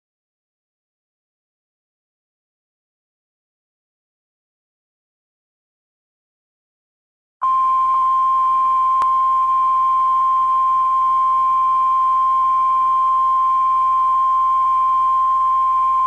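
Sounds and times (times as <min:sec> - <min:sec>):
steady test tone beep: 0:07.4 - 0:16.0.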